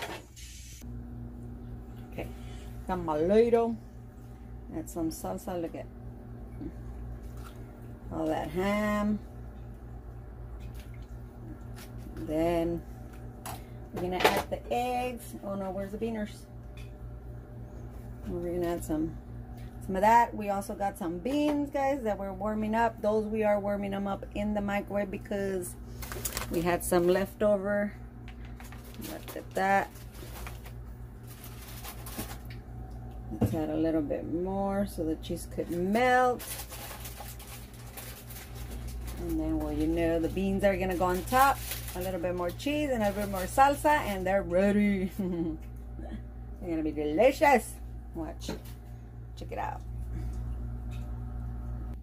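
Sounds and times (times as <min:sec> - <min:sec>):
steady low hum: 0:00.0 - 0:52.0.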